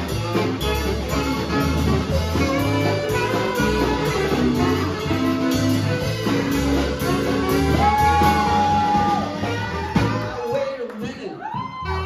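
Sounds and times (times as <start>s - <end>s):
saxophone: 0.0s - 10.6s, 11.6s - 12.0s
bass guitar: 0.0s - 12.0s
steady drum beat: 0.0s - 12.0s.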